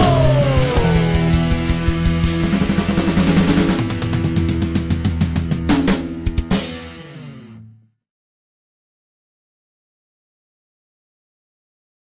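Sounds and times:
punk rock band playing: 0.0 - 7.7.

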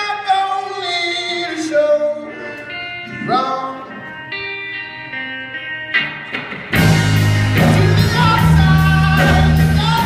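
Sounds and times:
electric guitar chords ringing: 0.0 - 10.0
person singing: 7.5 - 10.0.

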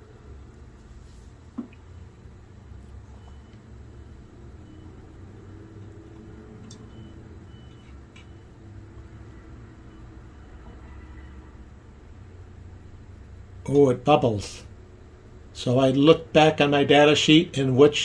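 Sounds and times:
low steady hum: 0.0 - 18.0.

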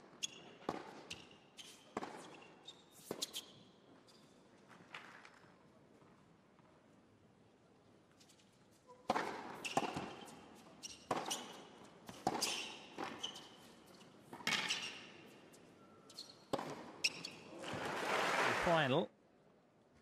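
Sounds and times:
tennis ball hits and bounces: 0.6 - 1.3, 1.9 - 3.4, 9.0 - 15.3, 16.5 - 18.4.

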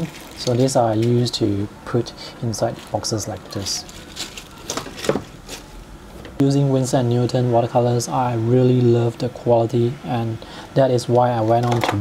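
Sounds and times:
plastic bag rustling and clicking: 0.0 - 1.2, 2.7 - 5.7.

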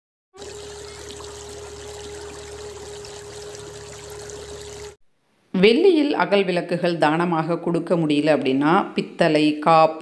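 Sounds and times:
stream running over stones: 0.4 - 5.0.

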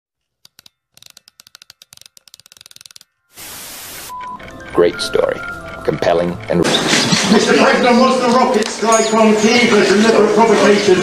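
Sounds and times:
electronic crackle clicks: 2.0 - 7.3
tv static hiss: 3.4 - 4.1.

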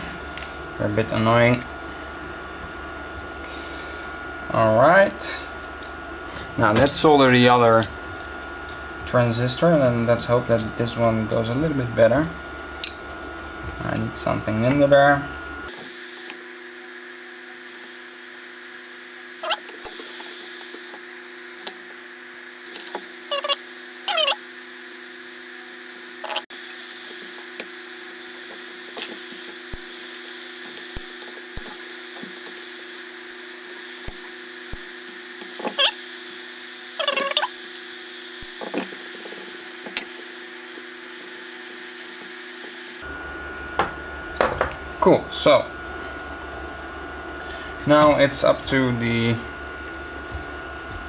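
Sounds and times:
steady electrical hum: 0.0 - 51.0.

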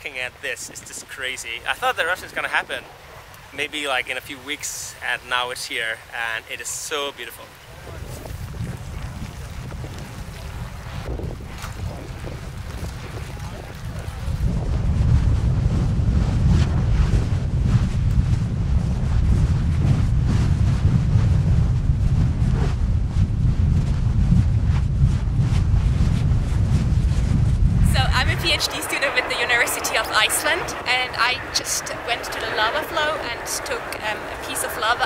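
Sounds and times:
lava crackling: 0.0 - 35.0
wind buffeting microphone: 0.0 - 35.0.

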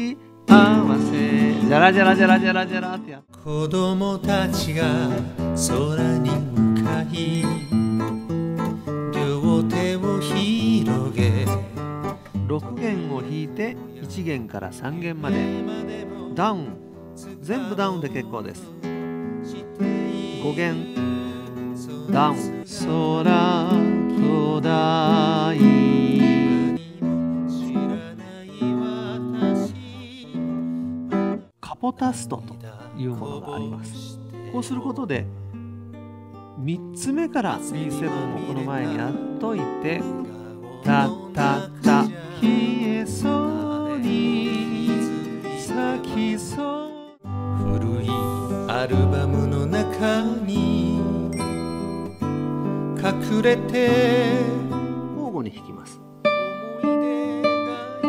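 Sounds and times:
classical guitar picking: 0.0 - 31.5, 32.9 - 58.0
wavering melody line: 6.2 - 11.0, 51.3 - 53.7.

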